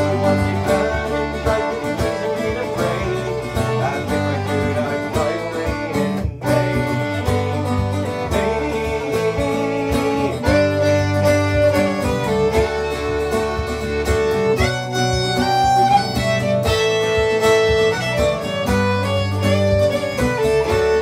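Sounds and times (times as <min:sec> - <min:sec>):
fiddle: 0:00.0 - 0:21.0
mandolin: 0:00.0 - 0:21.0
strummed acoustic guitar: 0:00.0 - 0:21.0.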